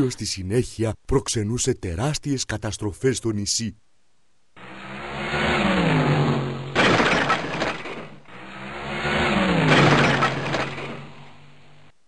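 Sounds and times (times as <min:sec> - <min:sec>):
cartoon car engine revving: 0:04.6 - 0:11.9.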